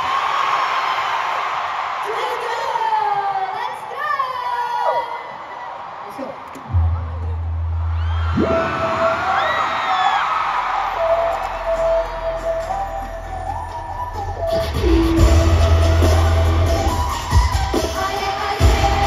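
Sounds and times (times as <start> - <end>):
crowd screaming and whooping: 0.0 - 3.7, 4.3 - 19.0
deep bass: 6.7 - 9.4, 11.4 - 17.5
pop song over stadium loudspeakers: 7.9 - 19.0.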